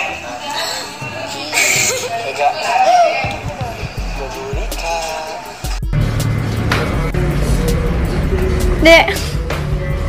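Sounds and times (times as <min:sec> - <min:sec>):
background music: 0:00.0 - 0:10.0
woman speaking: 0:08.8 - 0:09.2.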